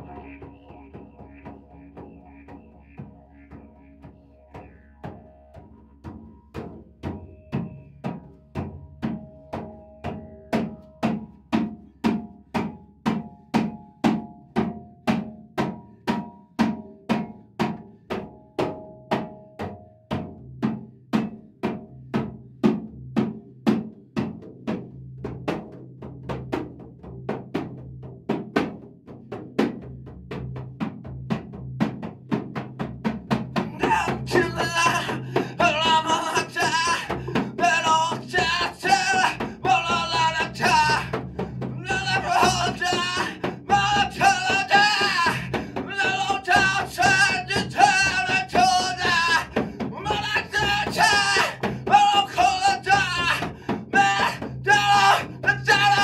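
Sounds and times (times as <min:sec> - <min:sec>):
low sustained tone: 0:00.0 - 0:08.5
faint high melodic line: 0:00.0 - 0:11.6
hand-struck frame drums: 0:04.0 - 0:56.0.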